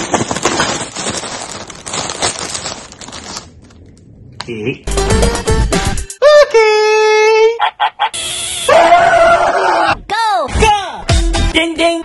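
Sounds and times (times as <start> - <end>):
loud rough scream: 8.6 - 10.0.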